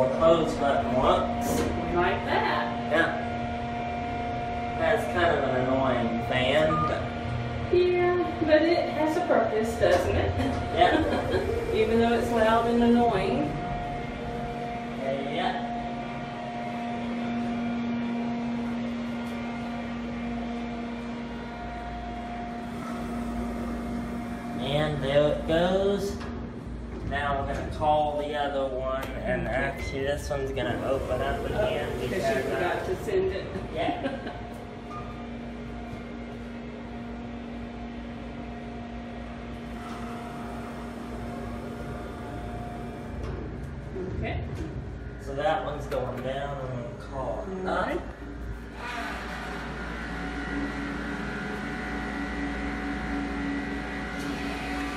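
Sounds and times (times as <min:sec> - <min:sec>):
ventilation fan humming: 0:00.0 - 0:54.9.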